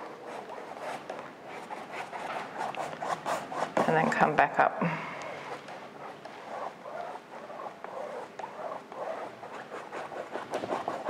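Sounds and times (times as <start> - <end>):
bristle brush scrubbing canvas: 0.0 - 4.6, 5.2 - 11.0.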